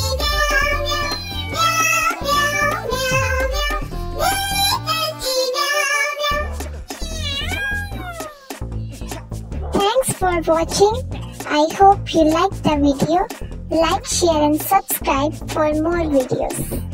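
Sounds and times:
children's song with backing track: 0:00.0 - 0:16.9
falling meow-like calls: 0:07.0 - 0:08.5.

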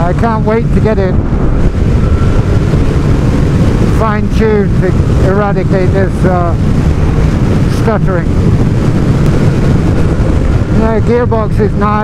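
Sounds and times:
man talking: 0:00.0 - 0:01.2, 0:04.0 - 0:06.6, 0:07.7 - 0:08.3, 0:10.8 - 0:12.0
motorcycle engine running: 0:00.0 - 0:12.0
wind noise on microphone: 0:00.0 - 0:12.0.

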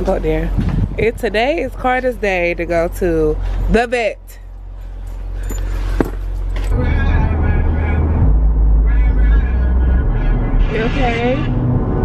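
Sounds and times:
car driving rumble: 0:00.0 - 0:12.0.

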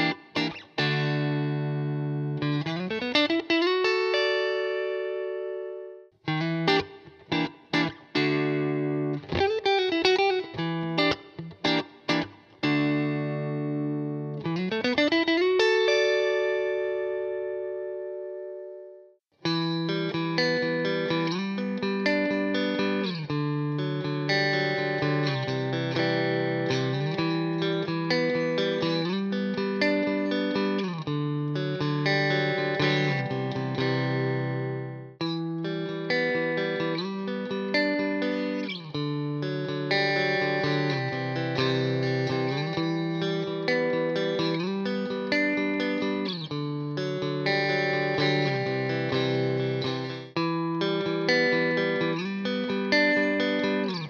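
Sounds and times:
clean electric guitar chords: 0:00.0 - 0:54.0.

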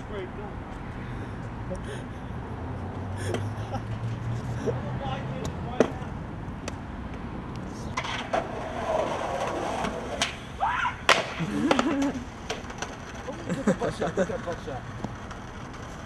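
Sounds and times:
skateboard rolling on concrete: 0:00.0 - 0:16.0
skateboard clacking on ground: 0:05.4 - 0:16.0
short shouts: 0:10.6 - 0:11.8.

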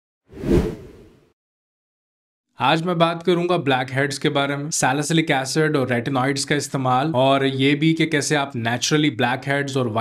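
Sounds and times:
whoosh sound effect: 0:00.3 - 0:01.2.

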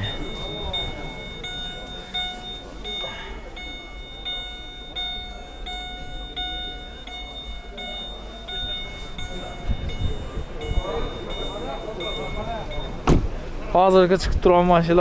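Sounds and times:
car warning chime: 0:00.0 - 0:14.1.

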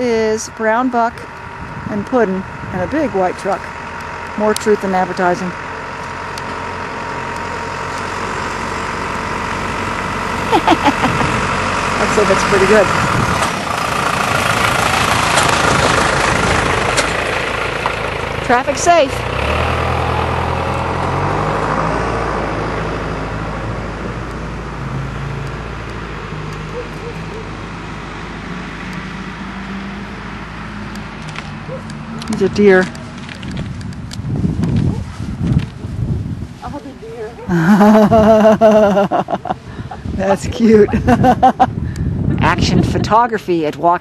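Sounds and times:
truck engine and tyre noise: 0:00.0 - 0:44.0.

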